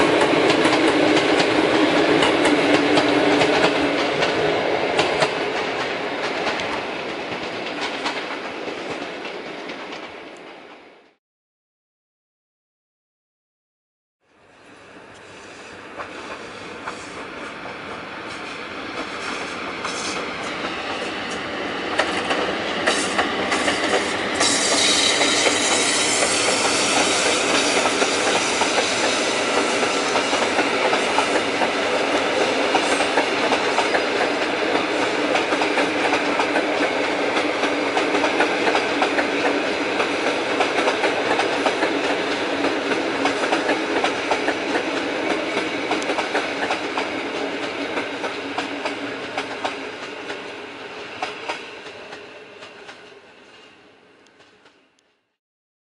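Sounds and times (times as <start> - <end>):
train wheels clattering over rails: 0.0 - 10.2, 15.9 - 50.6.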